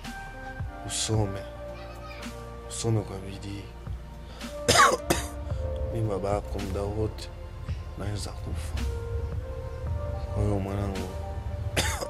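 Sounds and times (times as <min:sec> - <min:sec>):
background music: 0:00.0 - 0:12.0
man coughing: 0:04.7 - 0:05.4, 0:11.8 - 0:12.0.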